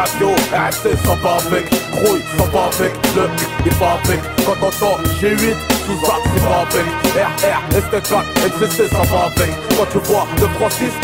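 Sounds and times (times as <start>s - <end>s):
man rapping over a beat: 0.0s - 11.0s.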